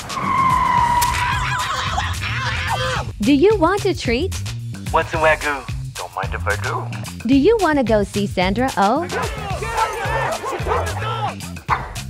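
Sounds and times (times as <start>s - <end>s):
background music: 0.0s - 12.0s
dog barking and yipping: 9.1s - 12.0s.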